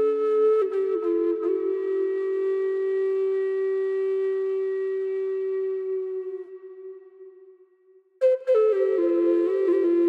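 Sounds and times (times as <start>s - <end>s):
native american flute note: 0.0s - 7.6s, 8.2s - 10.0s.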